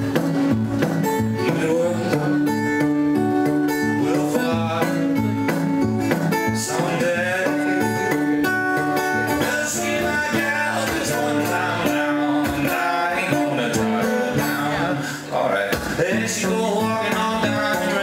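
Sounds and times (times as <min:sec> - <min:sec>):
fingerpicked acoustic guitar blues: 0:00.0 - 0:18.0
man singing: 0:01.2 - 0:18.0.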